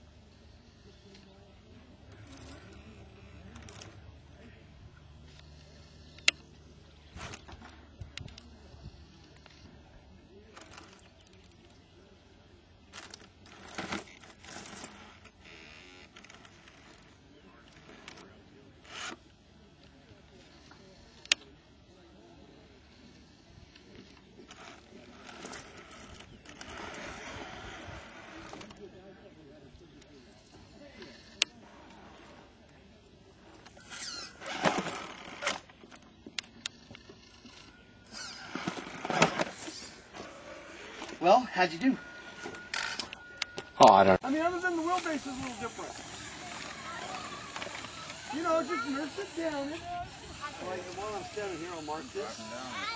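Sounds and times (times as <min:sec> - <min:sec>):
toy car motor whirring: 0:12.9 - 0:19.4, 0:22.8 - 0:28.8, 0:33.4 - 0:52.9
tyres scraping on stone: 0:37.0 - 0:41.3.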